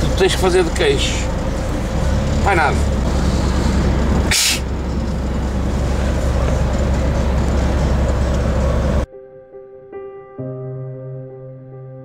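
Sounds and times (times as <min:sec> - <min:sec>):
road and engine rumble: 0:00.0 - 0:09.1
short sharp hiss: 0:04.3 - 0:04.7.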